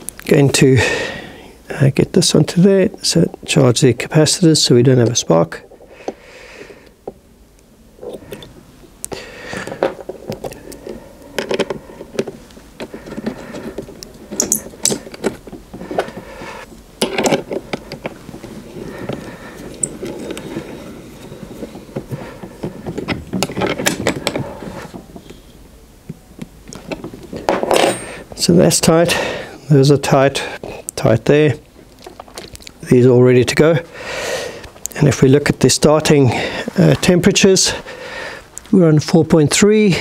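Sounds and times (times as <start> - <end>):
spanner tightening bolts: 14.3 - 15.3.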